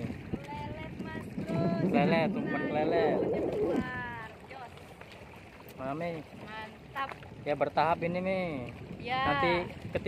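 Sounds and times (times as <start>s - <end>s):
wind noise on microphone: 0.0s - 4.5s, 6.9s - 10.0s
people talking: 0.4s - 4.7s.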